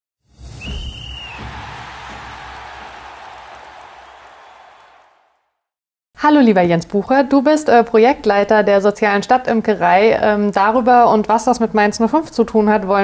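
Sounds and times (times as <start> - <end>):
short high whistle tone: 0.5 - 1.5.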